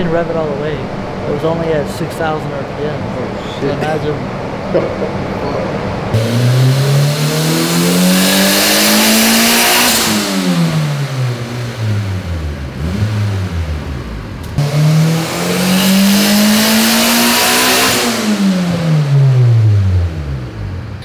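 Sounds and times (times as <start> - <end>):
car engine revving under load: 0.0 - 21.0.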